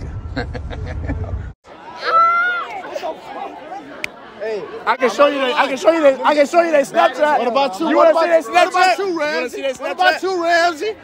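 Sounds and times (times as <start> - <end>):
people chattering: 1.7 - 11.0.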